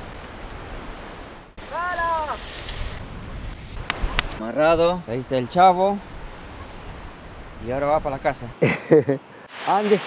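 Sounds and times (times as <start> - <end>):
wind on microphone: 1.6 - 5.0.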